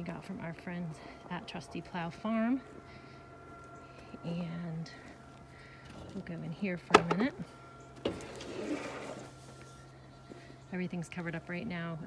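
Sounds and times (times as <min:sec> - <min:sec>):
metal gate scraping: 0:08.0 - 0:09.8.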